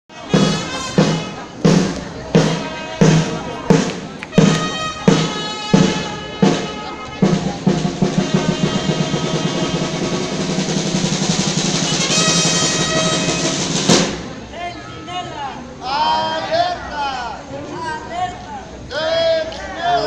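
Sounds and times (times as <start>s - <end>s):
drum beats and drum roll: 0.1s - 14.5s.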